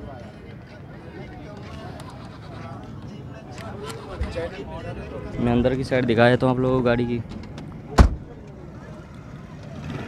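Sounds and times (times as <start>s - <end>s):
rumble of vehicles: 0.0s - 10.0s.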